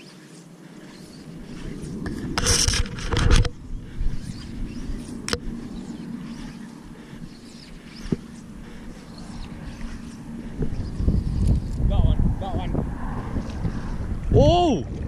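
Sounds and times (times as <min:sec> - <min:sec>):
wind rumbling on microphone: 0:00.8 - 0:15.0.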